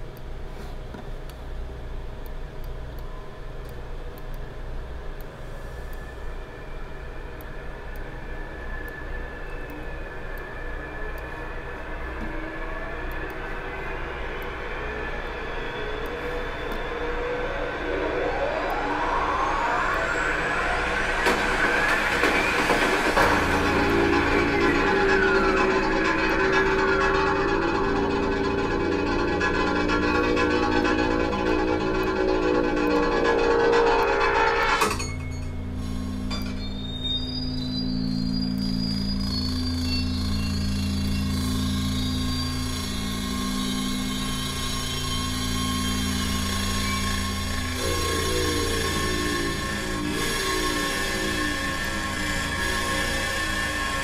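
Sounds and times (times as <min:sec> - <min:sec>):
low steady hums: 0:00.0 - 0:54.0
steady low drone: 0:02.3 - 0:54.0
faint high gliding tone: 0:05.8 - 0:54.0
layered sustained tones with pitch glides: 0:05.8 - 0:54.0.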